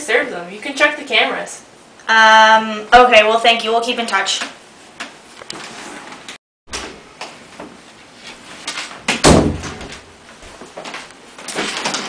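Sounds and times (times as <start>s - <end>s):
door shutting with heavy thud: 9.1s - 10.1s.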